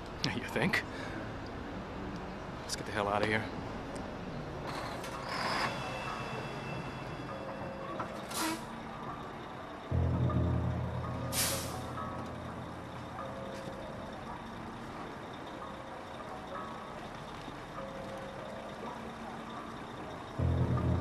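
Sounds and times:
garbage truck running: 4.2s - 21.0s
loud low engine rumble: 5.8s - 17.8s, 18.4s - 21.0s
air brake hiss: 8.3s - 8.7s, 11.3s - 11.9s.

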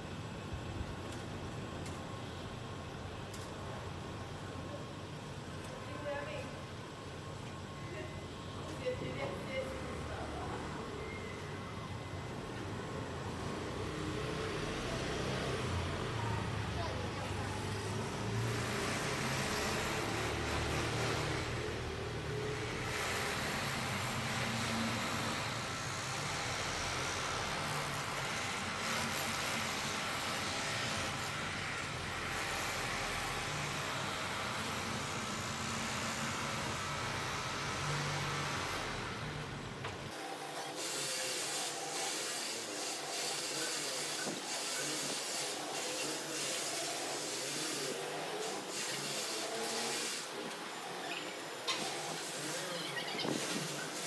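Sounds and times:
outdoor hiss: 12.2s - 54.0s.

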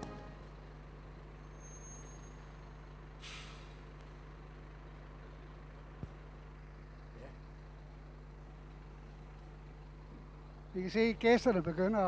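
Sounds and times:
coach engine at low speed: 0.0s - 12.0s
air brake hiss: 3.2s - 3.9s.

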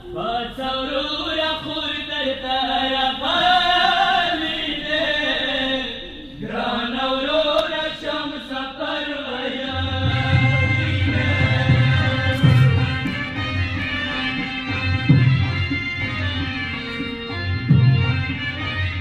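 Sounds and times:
lament chanting: 0.0s - 17.3s.

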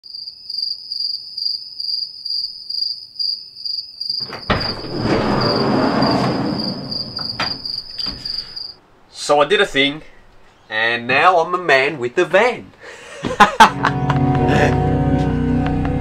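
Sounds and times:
cricket chirping: 0.0s - 8.8s
rushing noise: 4.5s - 7.9s.

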